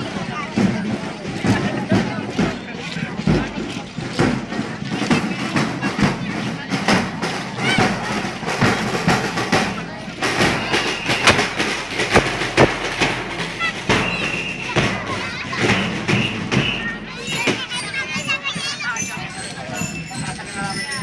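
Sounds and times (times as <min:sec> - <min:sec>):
crowd voices: 0:00.0 - 0:21.0
parade music: 0:04.0 - 0:21.0
sharp irregular hits: 0:07.8 - 0:16.5.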